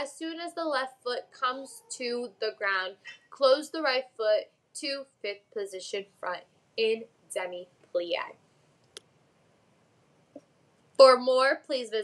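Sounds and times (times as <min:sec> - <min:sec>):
woman speaking: 0:00.0 - 0:08.4, 0:11.0 - 0:12.0.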